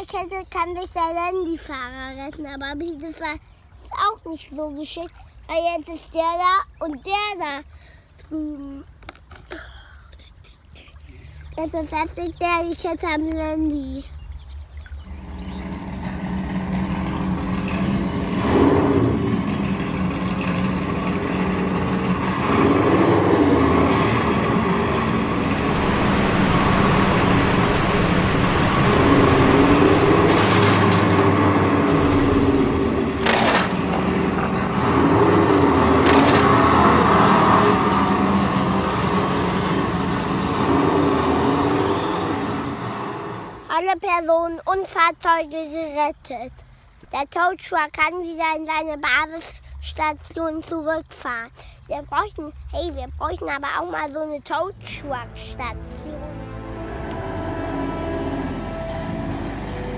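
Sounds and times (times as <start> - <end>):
electric motor and gearbox whining: 15.1 - 43.6
sharp cracks: 26.8 - 38.9.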